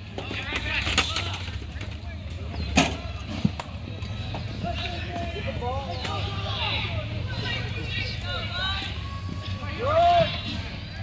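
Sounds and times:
distant shouting: 3.9s - 11.0s.

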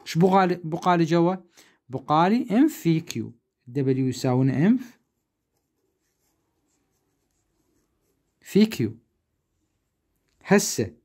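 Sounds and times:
pen scratching on paper: 5.0s - 8.5s.

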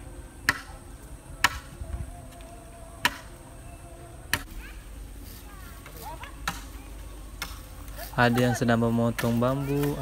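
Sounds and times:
tool striking bamboo: 0.4s - 0.8s, 1.4s - 1.7s, 3.0s - 3.3s, 4.3s - 4.6s, 6.4s - 6.8s, 8.3s - 10.0s.

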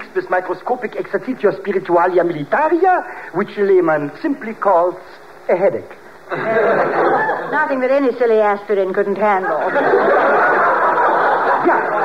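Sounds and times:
audience laughing: 6.3s - 7.7s, 9.4s - 12.0s.

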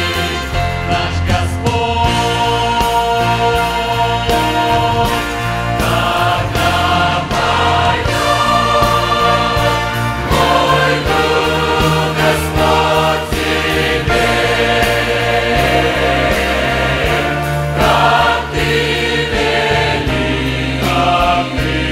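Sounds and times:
large mixed choir singing: 0.0s - 21.9s.

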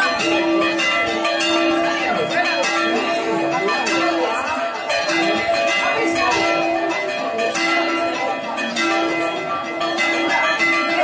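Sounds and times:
church bells pealing: 0.0s - 11.0s.

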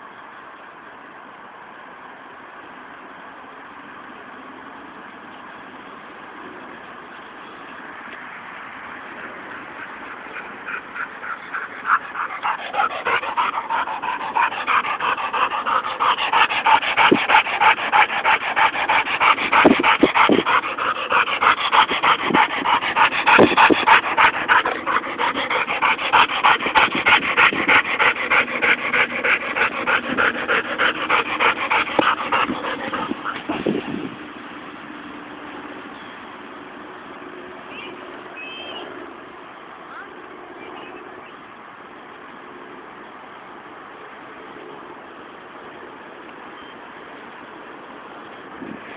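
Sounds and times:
dog panting hard: 9.6s - 34.1s.

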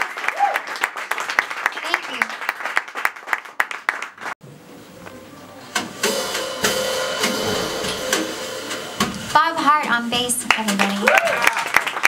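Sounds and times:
applause: 0.0s - 4.4s, 10.4s - 12.0s
jazz trio playing softly: 4.4s - 10.4s.

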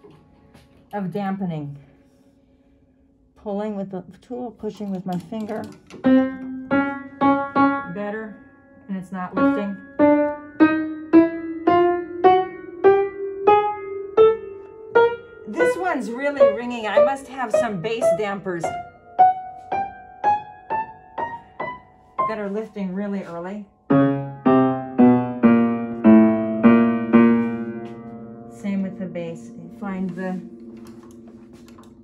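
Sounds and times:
upright piano notes ringing: 6.0s - 22.6s, 23.7s - 32.0s
piano notes rising run: 23.9s - 32.0s.

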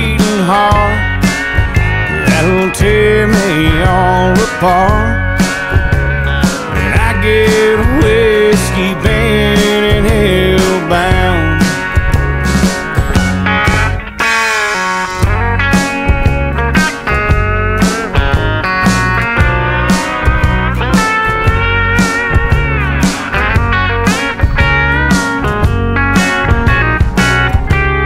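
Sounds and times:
drums and bass beat: 0.0s - 28.0s
electric guitar lead: 0.0s - 28.0s
steel guitar sliding notes: 0.0s - 28.0s.

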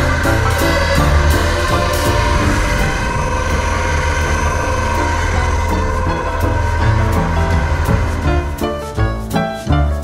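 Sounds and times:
heavy machine engine running: 0.0s - 9.7s
background music: 0.0s - 10.0s.

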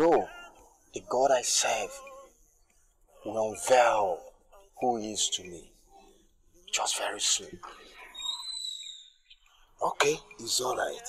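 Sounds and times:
bird whistling: 8.0s - 9.5s.

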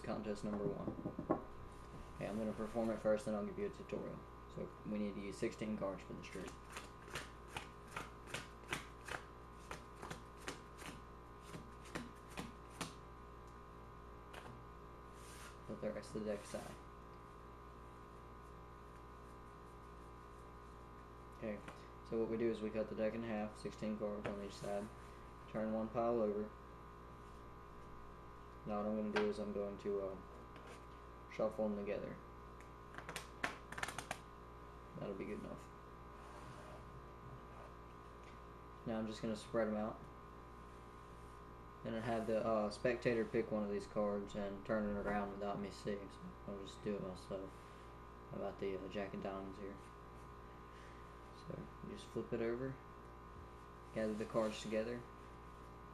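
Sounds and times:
faint steady hum: 0.0s - 55.9s
playing cards slapping on table: 6.4s - 13.0s, 14.3s - 14.6s, 32.9s - 34.2s.

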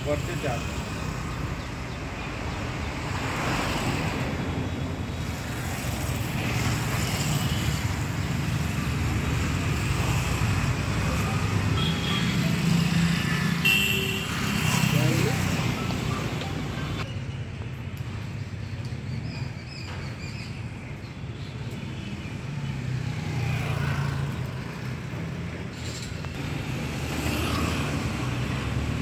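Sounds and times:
rumble of passing vehicles: 0.0s - 29.0s.

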